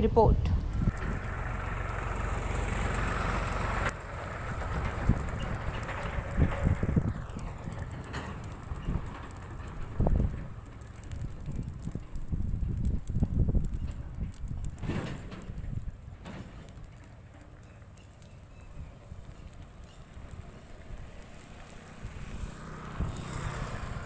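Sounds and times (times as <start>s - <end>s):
wind buffeting microphone: 0.0s - 16.1s, 18.5s - 24.0s.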